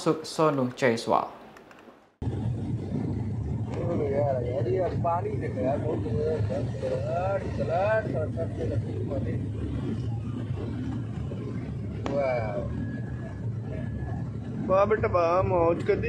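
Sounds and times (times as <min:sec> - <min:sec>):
turboprop engines drone in cabin: 0:02.2 - 0:16.0
passenger talking: 0:03.7 - 0:16.0.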